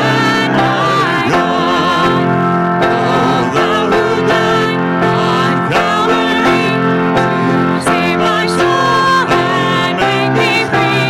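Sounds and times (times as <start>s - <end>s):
instrumental accompaniment: 0.0s - 11.0s
people singing worship song: 0.0s - 11.0s.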